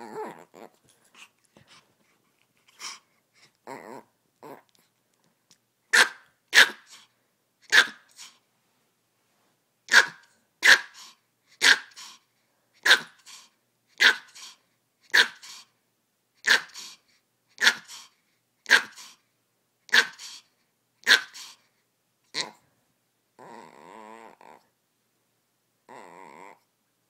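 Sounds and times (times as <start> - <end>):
dog barking: 5.9 - 7.0, 7.7 - 8.3, 9.9 - 12.1, 12.8 - 13.2, 14.0 - 14.5, 15.1 - 15.6, 16.4 - 16.9, 17.6 - 18.0, 18.7 - 19.1, 19.9 - 20.4, 21.0 - 21.5.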